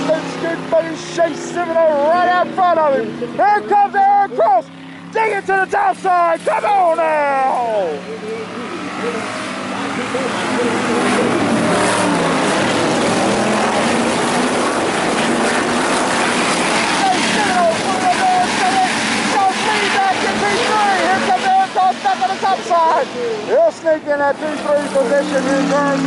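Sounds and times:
announcer talking: 0.0s - 14.5s, 16.7s - 26.0s
race cars engine and tyre noise: 0.0s - 26.0s.

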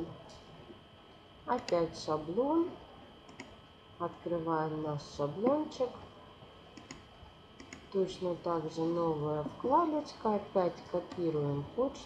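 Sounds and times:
computer mouse clicks: 3.3s - 3.6s, 6.8s - 7.9s.

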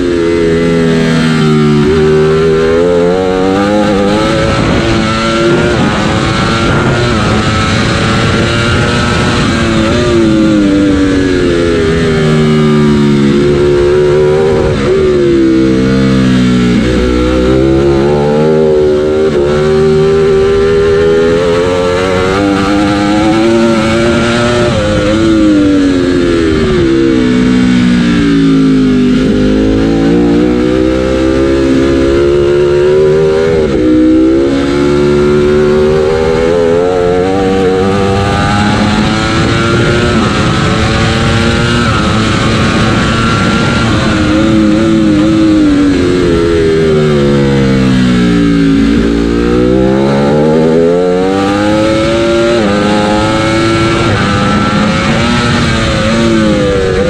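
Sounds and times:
superbike engine revving: 0.0s - 57.0s.

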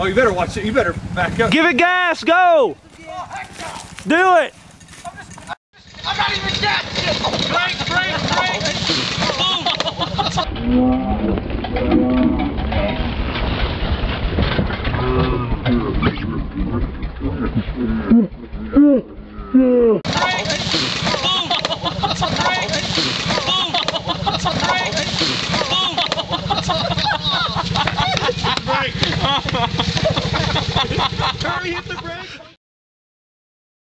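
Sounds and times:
raised voices: 5.9s - 13.2s, 14.9s - 30.2s
small engine humming: 20.1s - 32.5s.

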